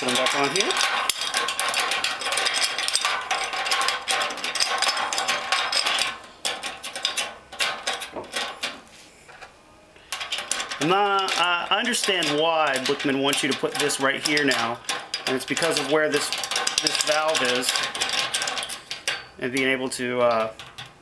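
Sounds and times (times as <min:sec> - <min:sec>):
nuts spun onto metal fittings: 0:00.0 - 0:08.8, 0:10.1 - 0:21.0
rapid metallic clicking and rattling: 0:00.0 - 0:09.4, 0:10.1 - 0:21.0.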